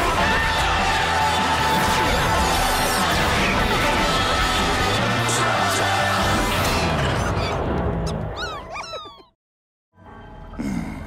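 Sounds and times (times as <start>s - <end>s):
theme music: 0.0s - 8.6s
squeaky cartoon creature chirps: 8.4s - 9.3s.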